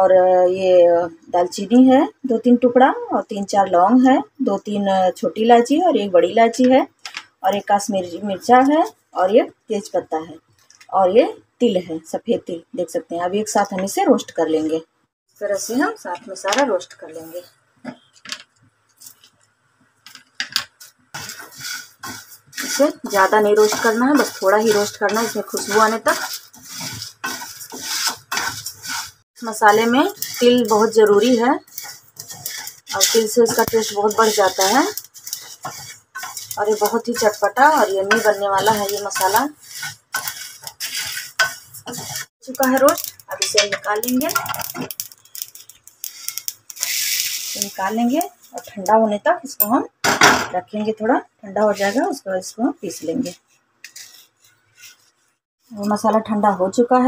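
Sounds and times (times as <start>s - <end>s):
seeds rustling in pan: 20.8s - 48.9s, 51.6s - 55.1s
wooden spatula scraping pan: 21.1s - 48.8s, 51.6s - 55.9s.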